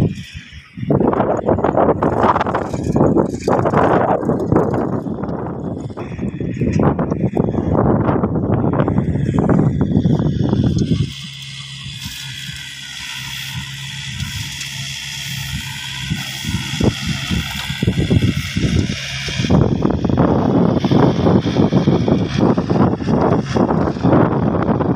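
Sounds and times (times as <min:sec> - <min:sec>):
distant tractor engine running: 0:00.0 - 0:24.9
wind buffeting microphone: 0:00.0 - 0:24.9.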